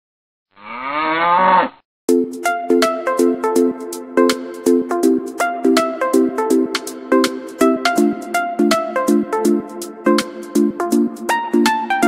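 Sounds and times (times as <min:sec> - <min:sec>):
cow mooing: 0:00.5 - 0:01.8
electronic music with steady beat: 0:02.1 - 0:12.0.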